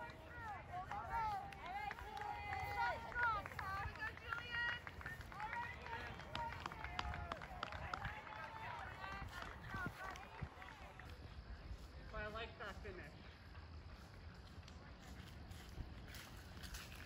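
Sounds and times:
young people talking and calling: 0.0s - 13.0s.

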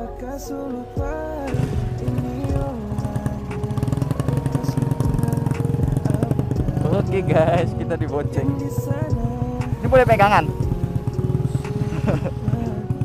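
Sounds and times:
background music: 0.0s - 13.0s
motorcycle engine pulsing: 0.9s - 13.0s.

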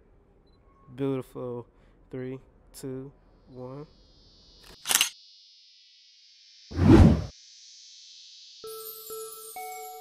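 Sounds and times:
camera shutter click: 4.6s - 5.2s.

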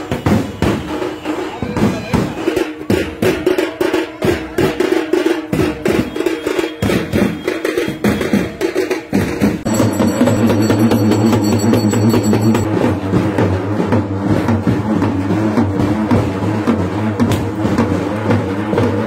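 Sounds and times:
hand drums beating: 1.7s - 13.4s.

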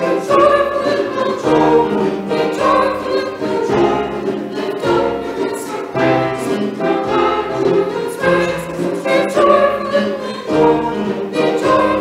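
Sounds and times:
choir singing a hymn: 0.0s - 12.0s
piano accompaniment: 0.0s - 12.0s.

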